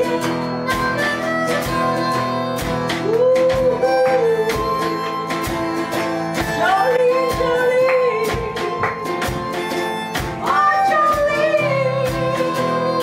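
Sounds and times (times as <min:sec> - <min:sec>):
drum kit beat: 0:00.0 - 0:13.0
harmonica melody with bent notes: 0:00.0 - 0:13.0
strummed acoustic guitar: 0:00.0 - 0:13.0.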